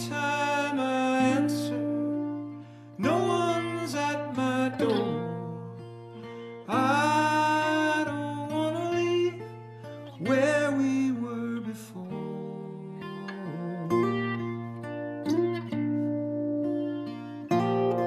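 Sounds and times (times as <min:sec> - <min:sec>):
man singing: 0:00.0 - 0:15.0
strummed acoustic guitar: 0:00.0 - 0:18.0.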